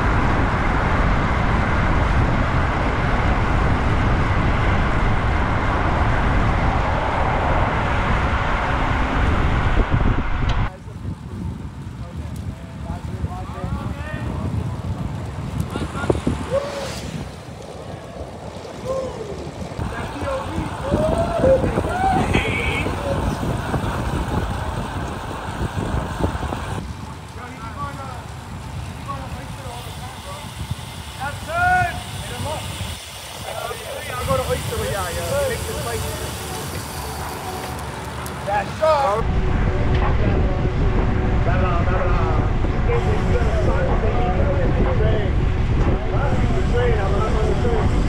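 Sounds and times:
wind rumbling on microphone: 0:00.0 - 0:48.0.

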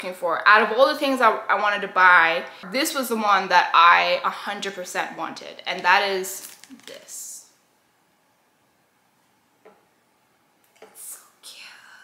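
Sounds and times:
woman whispering: 0:11.0 - 0:12.0.

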